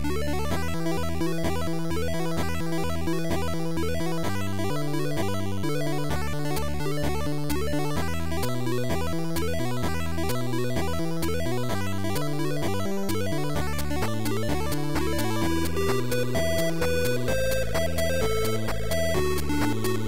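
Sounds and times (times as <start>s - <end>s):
electronic video game music: 0.0s - 20.0s
steady clicking beat: 0.5s - 20.0s.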